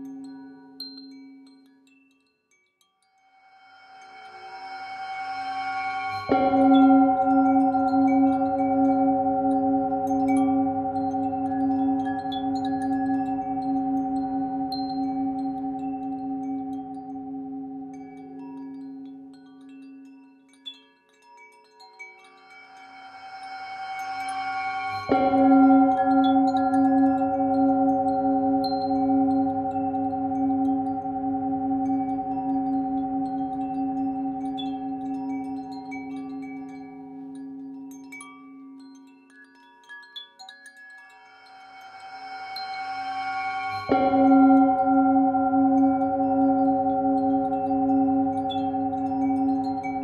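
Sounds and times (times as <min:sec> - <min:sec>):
wind chimes tinkling: 0:00.0 - 0:50.0
singing bowl ringing: 0:03.3 - 0:20.0, 0:22.2 - 0:39.0, 0:40.7 - 0:50.0.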